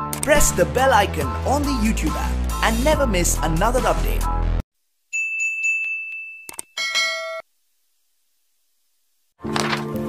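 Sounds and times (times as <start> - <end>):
bright bell chime: 5.1 - 7.4
ringing ding: 5.2 - 7.5.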